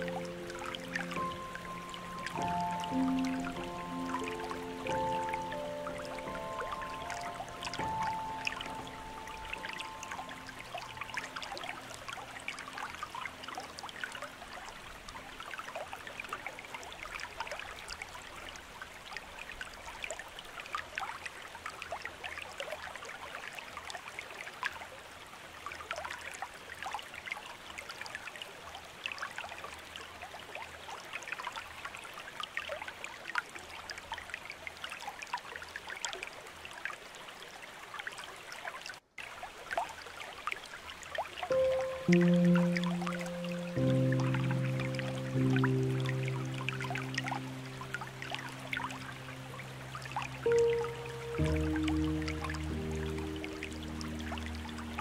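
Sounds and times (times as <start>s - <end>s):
waterfall splashing over rocks: 0.0s - 15.3s, 39.2s - 55.0s
soft sustained music tones: 0.0s - 18.3s, 41.4s - 55.0s.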